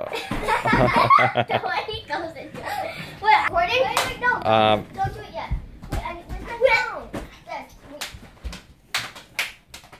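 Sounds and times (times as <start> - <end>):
children's voices: 1.5 - 4.4.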